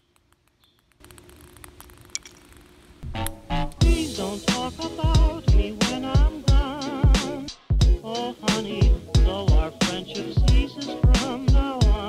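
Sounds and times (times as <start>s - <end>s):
low hum: 1.0s - 10.6s.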